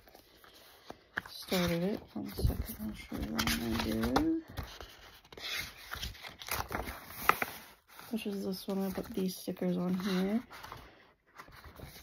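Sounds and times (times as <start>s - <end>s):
paper rustling and scraping: 0.0s - 12.0s.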